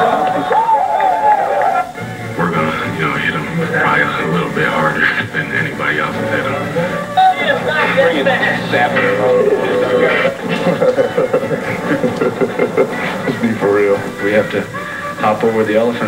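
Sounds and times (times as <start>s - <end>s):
television music: 0.0s - 16.0s
voices on television: 0.0s - 16.0s.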